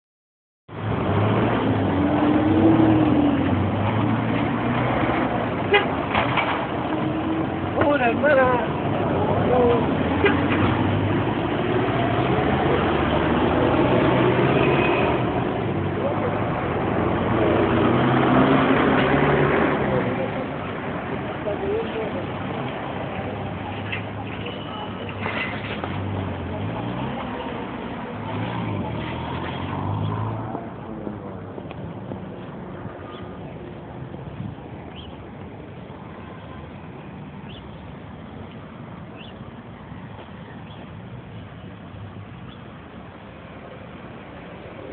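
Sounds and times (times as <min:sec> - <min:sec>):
road noise: 0:00.7 - 0:44.9
vehicles humming: 0:00.7 - 0:44.9
passers-by's voices: 0:00.8 - 0:44.9.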